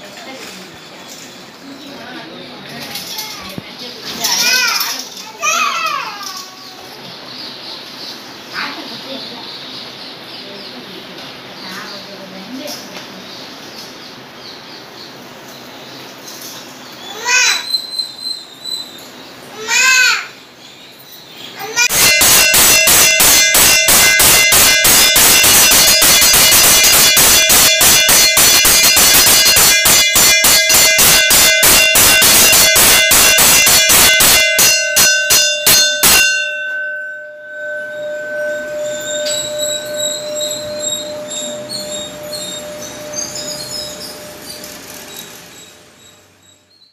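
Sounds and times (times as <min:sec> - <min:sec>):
bell clanging rapidly: 0:21.8 - 0:45.8.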